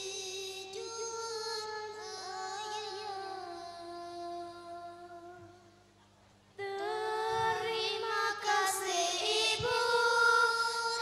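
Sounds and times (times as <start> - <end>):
girls singing in unison: 6.6 - 11.0.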